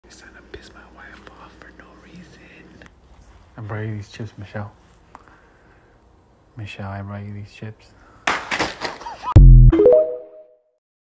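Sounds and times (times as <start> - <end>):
man whispering: 0.0 - 4.8.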